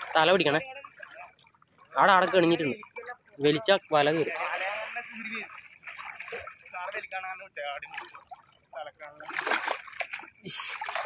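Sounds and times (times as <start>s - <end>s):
water splashing and sloshing: 0.0s - 11.0s.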